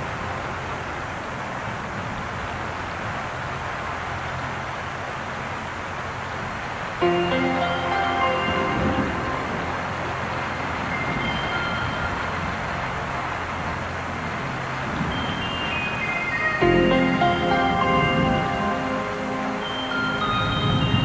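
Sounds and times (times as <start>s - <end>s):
steady hiss: 0.0s - 21.0s
soap opera background music: 7.0s - 13.2s, 16.5s - 20.8s.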